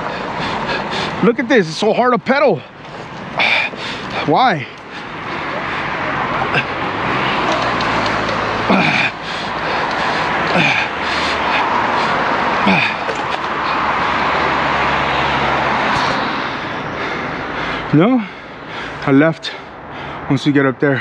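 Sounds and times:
passing traffic engine hum: 0.0 - 21.0
bicycle tyre noise: 2.9 - 17.9
grunts of effort: 3.4 - 7.7, 8.6 - 13.6.

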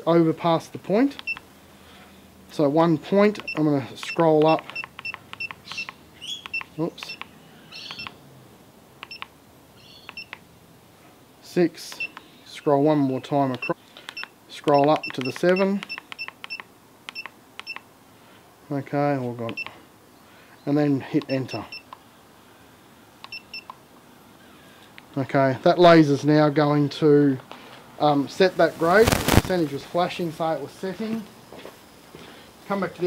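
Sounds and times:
short electronic beeps: 3.4 - 7.2, 12.0 - 12.2, 13.6 - 17.8, 23.3 - 23.7.

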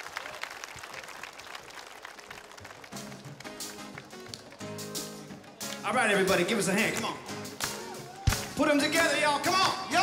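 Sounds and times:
audience applause: 0.0 - 5.1
crowd noise: 0.0 - 10.0
live band playing held chords: 2.7 - 10.0.

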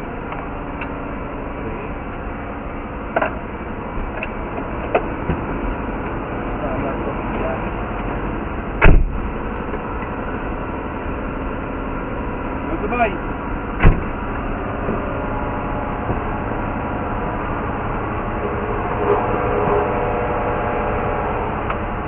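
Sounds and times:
engines idling: 0.0 - 22.0
sharp thud: 8.8 - 9.2.

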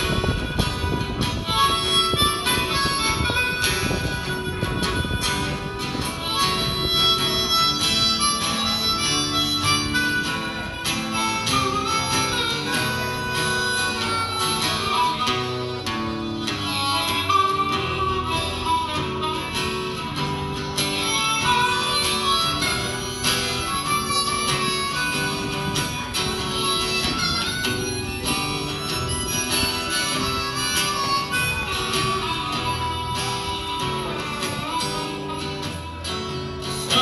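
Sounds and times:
acoustic guitar accompaniment: 0.0 - 37.0
harmonica solo: 0.0 - 37.0.

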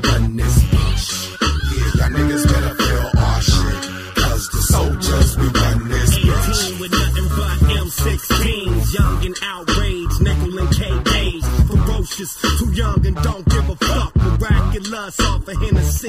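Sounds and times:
heavy bass-driven beat: 0.0 - 16.0
person rapping: 0.0 - 16.0.

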